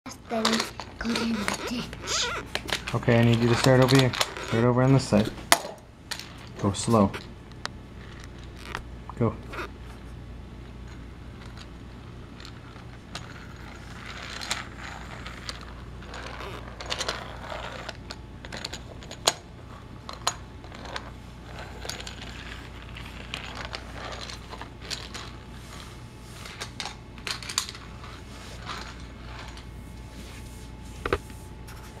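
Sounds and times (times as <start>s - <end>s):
toy train rolling on plastic track: 0.2s - 1.9s, 2.9s - 5.2s, 12.4s - 19.4s, 20.1s - 25.4s.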